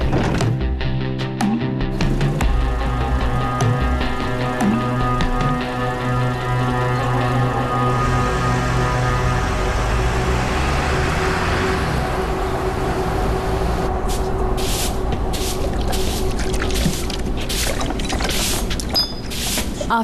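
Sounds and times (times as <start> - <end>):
background music: 0.0 - 18.6
low rumble: 2.4 - 18.0
broom sweeping a floor: 14.0 - 20.0.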